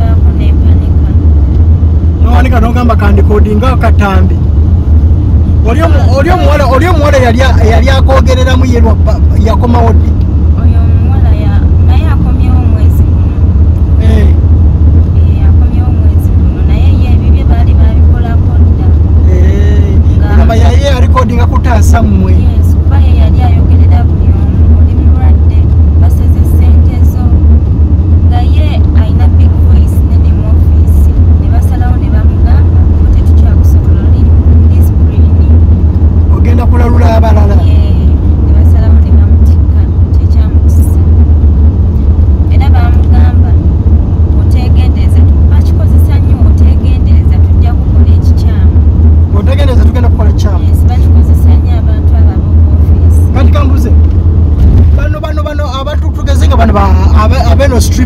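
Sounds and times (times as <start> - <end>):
woman speaking: 0.0 - 1.3, 10.6 - 13.1, 15.1 - 19.0, 20.1 - 20.6, 22.2 - 27.4, 28.2 - 35.6, 37.4 - 41.0, 42.5 - 43.6, 44.4 - 48.8, 50.3 - 53.4
car cabin rumble: 0.0 - 58.0.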